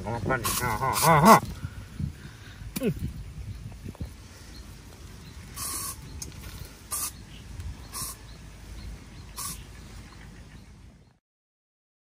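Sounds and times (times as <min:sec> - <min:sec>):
steady low rumble: 0:00.0 - 0:11.2
aerosol spray can hisses: 0:05.6 - 0:06.0, 0:06.9 - 0:07.2, 0:09.4 - 0:09.6.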